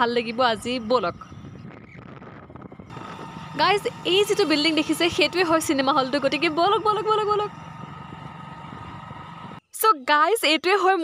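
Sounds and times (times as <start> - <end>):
street background rumble: 0.0 - 9.7.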